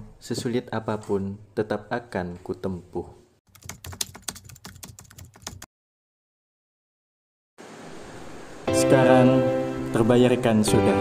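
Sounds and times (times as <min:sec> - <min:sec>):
keyboard typing clicks: 0:03.5 - 0:05.7.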